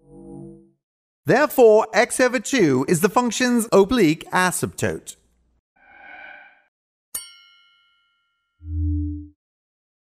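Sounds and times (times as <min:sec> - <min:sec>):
bell-like ding: 0:07.1 - 0:08.6
short low tone: 0:08.6 - 0:09.4.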